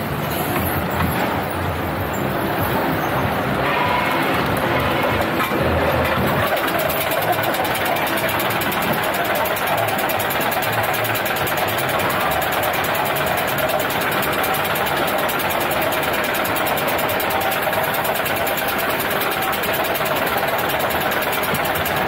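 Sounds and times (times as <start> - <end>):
roller coaster lift rattling: 0.0 - 22.0.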